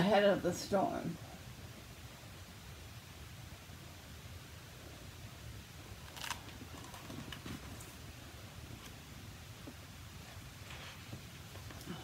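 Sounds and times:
low steady room hum: 0.0s - 12.0s
book page rustling: 6.0s - 8.1s.

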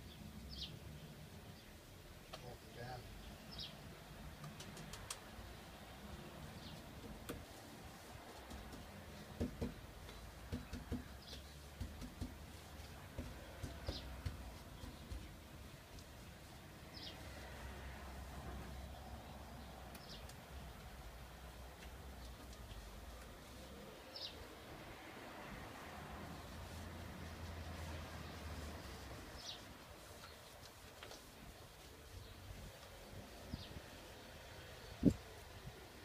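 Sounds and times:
paintbrush knocking plastic paint pot: 8.5s - 15.4s.

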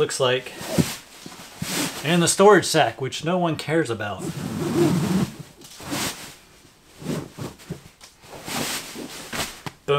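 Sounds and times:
fabric rustling: 4.2s - 9.8s.

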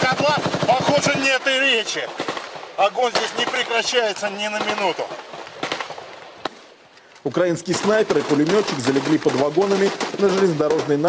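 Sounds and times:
gunshots: 0.0s - 6.8s, 7.6s - 11.0s
background noise: 0.0s - 11.0s.

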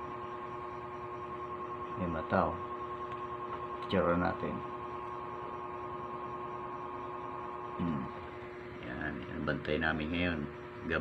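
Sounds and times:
steady two-tone hum: 0.0s - 11.0s.

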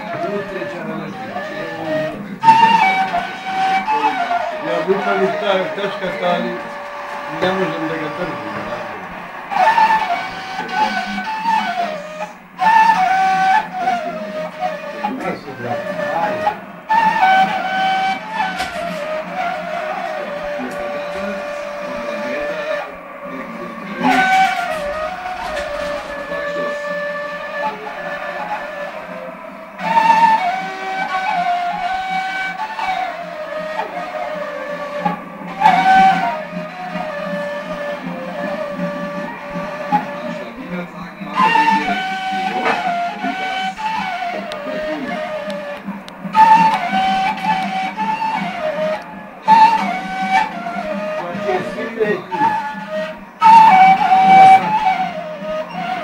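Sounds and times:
end-blown flute melody: 0.0s - 56.0s
low drone: 1.6s - 40.6s.

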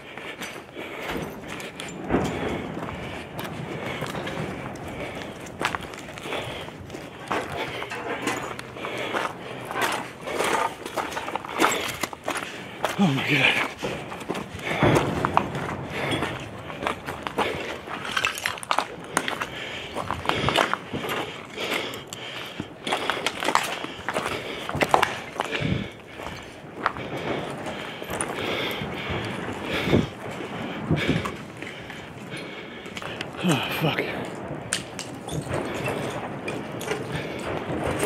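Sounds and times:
footsteps on rubble: 0.0s - 38.0s.

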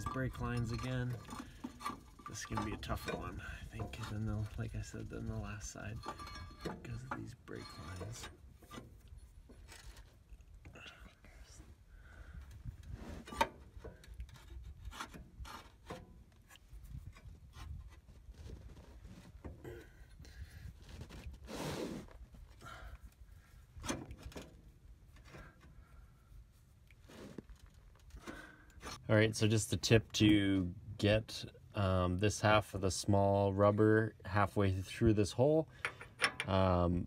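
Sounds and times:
metal and rubber scraping: 0.0s - 10.8s, 12.5s - 22.6s, 23.4s - 31.1s.

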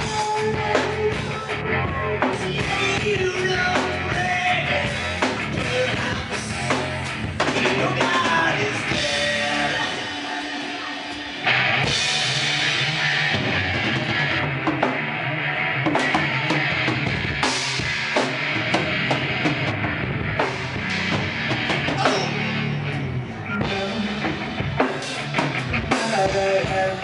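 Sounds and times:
heavy rock band playing: 0.0s - 27.0s.

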